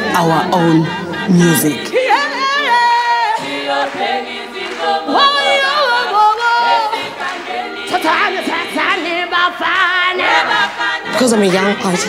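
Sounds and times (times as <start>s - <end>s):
woman singing into microphone: 0.0s - 4.0s, 5.1s - 12.0s.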